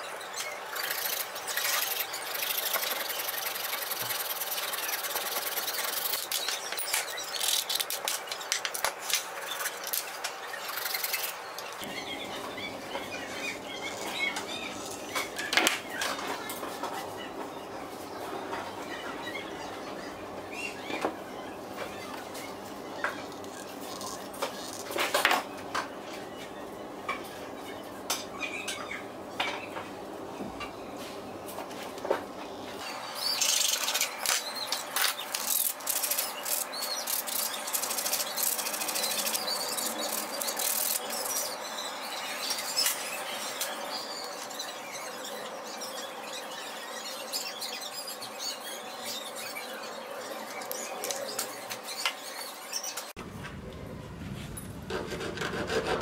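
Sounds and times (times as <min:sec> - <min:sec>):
sandpaper rubbing on wood: 0:00.8 - 0:06.4, 0:54.9 - 0:56.0.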